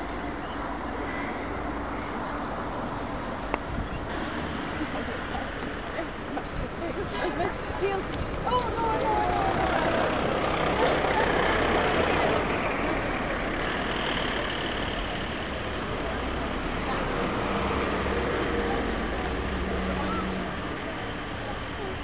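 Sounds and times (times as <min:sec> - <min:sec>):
motor vehicle running: 0:02.4 - 0:22.0.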